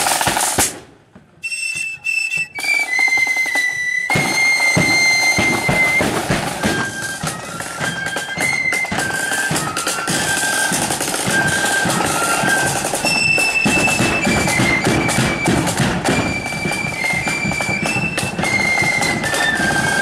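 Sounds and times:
drums beating: 0.0s - 20.0s
flute melody: 1.4s - 20.0s.

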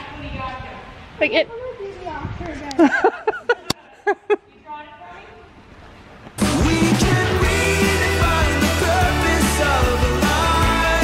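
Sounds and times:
woman laughing: 2.7s - 4.6s.

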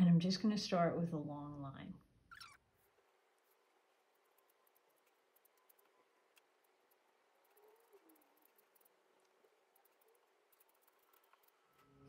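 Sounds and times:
brush dabbing on paper: 2.7s - 11.9s.

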